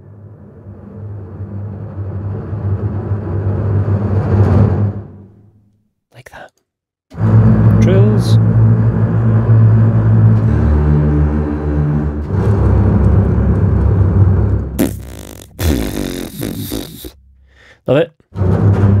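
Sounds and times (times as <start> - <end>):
double basses playing bowed trills: 7.2 - 17.7
burst of hiss-like noise: 14.8 - 17.2.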